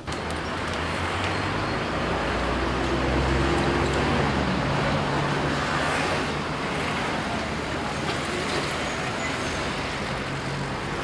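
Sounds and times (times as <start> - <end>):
road traffic: 0.0 - 11.0.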